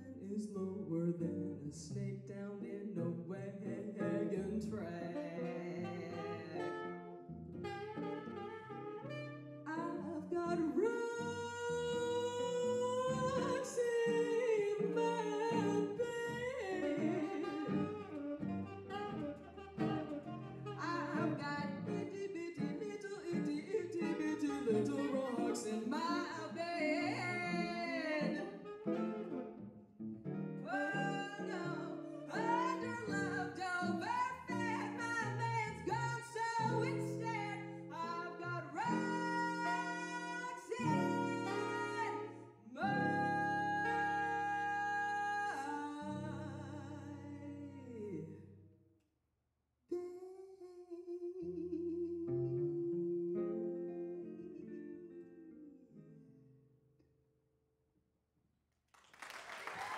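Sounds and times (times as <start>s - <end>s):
woman singing: 0.0s - 6.8s, 9.7s - 18.3s, 20.7s - 28.8s, 30.6s - 48.5s, 49.9s - 55.8s
jazz guitar: 0.0s - 48.6s, 51.4s - 56.7s
saxophone: 3.2s - 48.5s, 49.9s - 55.9s.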